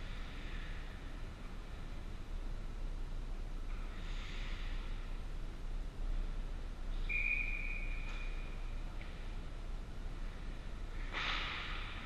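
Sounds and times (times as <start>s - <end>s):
referee's whistle blast: 7.1s - 8.4s.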